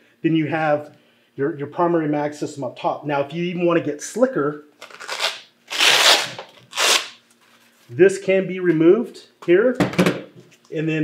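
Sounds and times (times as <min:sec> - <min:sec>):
velcro ripping apart: 0:04.8 - 0:07.2.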